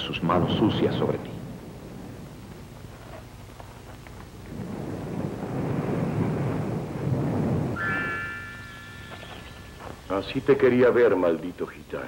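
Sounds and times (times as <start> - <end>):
low rumble of thunder: 0.0 - 11.0
sustained high chord: 7.8 - 10.8.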